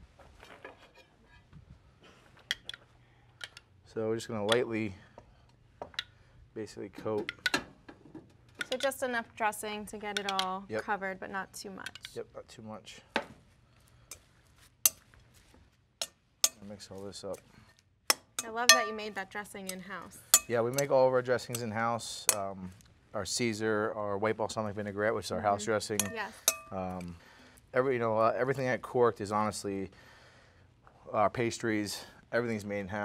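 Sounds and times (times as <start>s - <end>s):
metal spoon clicking on ramekin: 18.4s - 19.1s, 20.4s - 20.9s, 26.0s - 26.8s.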